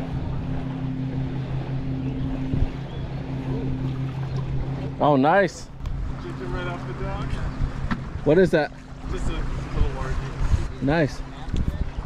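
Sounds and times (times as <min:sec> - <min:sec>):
small boat motor humming: 0:00.0 - 0:12.0
wind noise on microphone: 0:02.1 - 0:03.2, 0:09.0 - 0:12.0.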